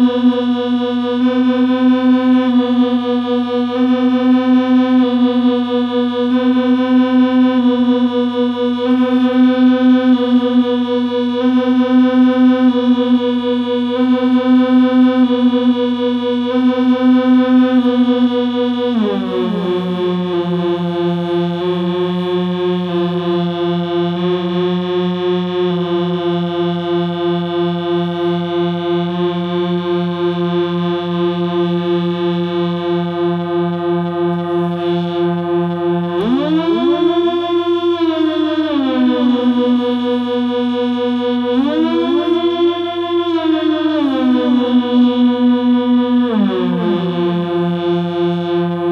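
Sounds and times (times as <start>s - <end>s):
buzzy synthesizer drone with delay: 0.0s - 48.9s.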